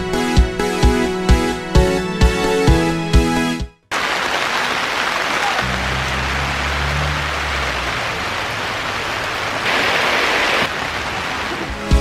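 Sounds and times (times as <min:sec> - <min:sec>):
heavy rain falling: 0:03.9 - 0:12.0.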